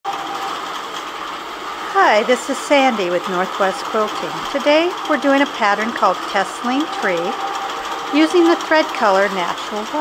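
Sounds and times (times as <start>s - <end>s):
quilting machine motor hum: 0.1s - 10.0s.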